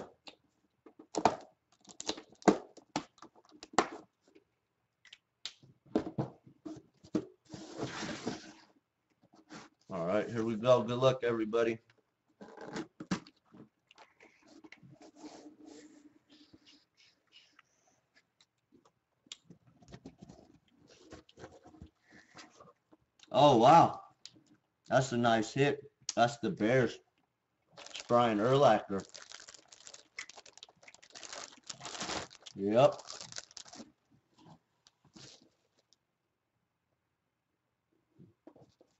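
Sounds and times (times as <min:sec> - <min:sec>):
cardboard scraping and rustling: 0:07.5 - 0:08.7
plastic bag crinkling: 0:27.8 - 0:34.0, 0:35.2 - 0:35.9.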